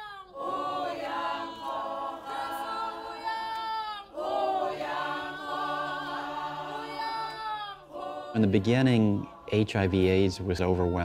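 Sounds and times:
group singing unaccompanied in harmony: 0:00.0 - 0:11.0.

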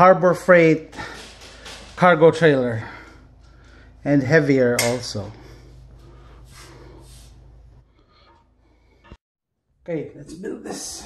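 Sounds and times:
steady low hum: 0:00.6 - 0:09.2
person breathing: 0:00.9 - 0:02.0, 0:02.6 - 0:04.0, 0:05.3 - 0:09.2.

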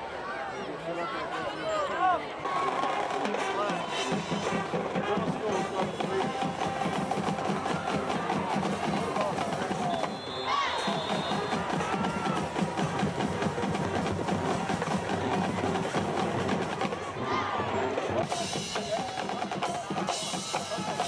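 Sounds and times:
crowd shouting and cheering: 0:00.0 - 0:21.0
band drums: 0:02.4 - 0:17.2, 0:18.0 - 0:21.0.

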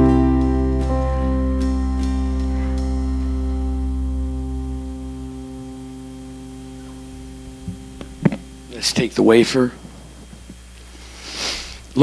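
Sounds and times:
live band holding a chord: 0:00.0 - 0:10.2
steady electrical hum: 0:00.0 - 0:12.0.

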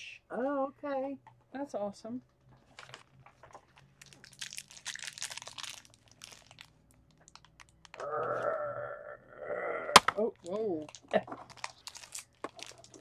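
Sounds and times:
crinkly wrapper being crumpled: 0:02.6 - 0:08.5, 0:10.2 - 0:13.0.

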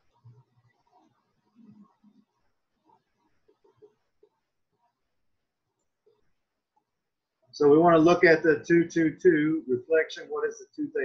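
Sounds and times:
faint soft low sounds: 0:00.0 - 0:11.0.

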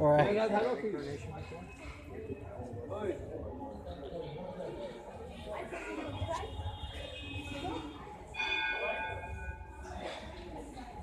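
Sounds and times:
temple bell ringing: 0:08.2 - 0:10.2.

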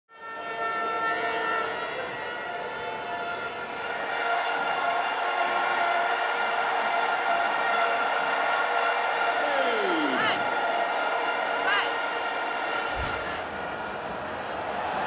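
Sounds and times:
crowd noise: 0:02.0 - 0:15.0.

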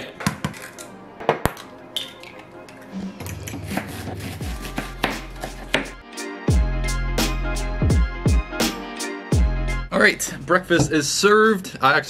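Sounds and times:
background music with deep bass: 0:01.4 - 0:11.1.

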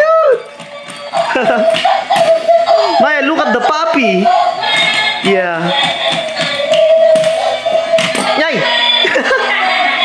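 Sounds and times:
electronic toy song: 0:00.0 - 0:10.0.

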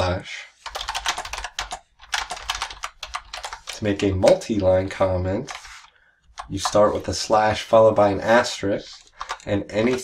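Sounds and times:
computer keyboard typing: 0:00.6 - 0:07.1, 0:08.9 - 0:10.0.

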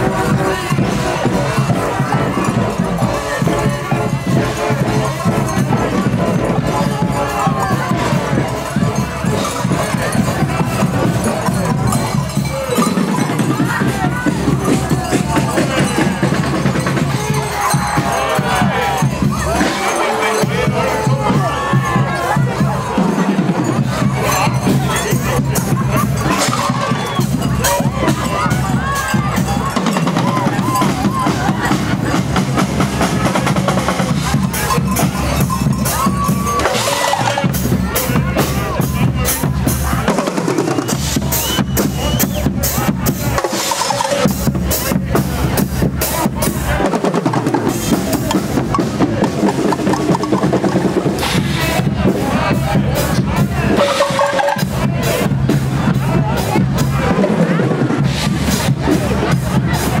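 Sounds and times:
brass band marching and playing: 0:00.0 - 1:00.0
crowd voices: 0:00.0 - 1:00.0
snare and bass drums: 0:00.0 - 1:00.0.

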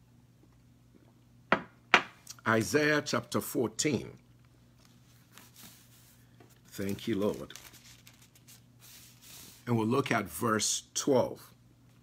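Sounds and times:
mug knocking on table: 0:01.5 - 0:02.2.

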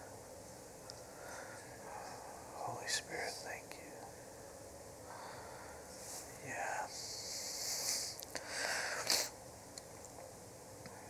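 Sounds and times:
person whispering: 0:01.8 - 0:04.2, 0:06.2 - 0:08.2.

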